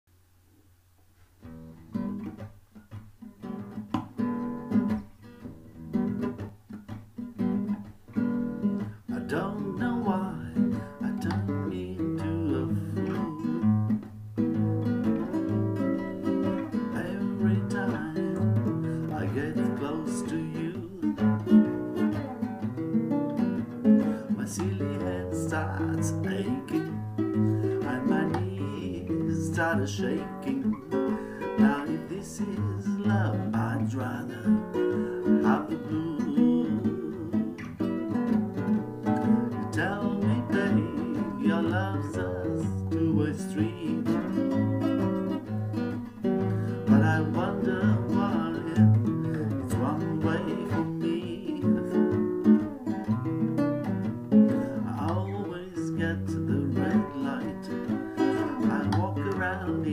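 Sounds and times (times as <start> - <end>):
classical guitar playing: 1.2 - 59.9.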